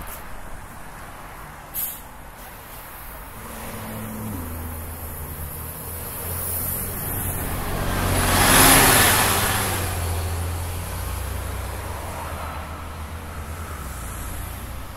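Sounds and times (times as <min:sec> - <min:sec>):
road noise: 0:00.0 - 0:14.9
bus engine accelerating: 0:01.7 - 0:14.9.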